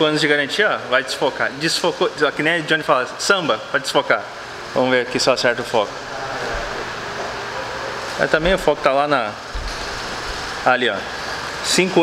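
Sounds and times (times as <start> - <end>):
mechanical running noise: 4.3 - 12.0.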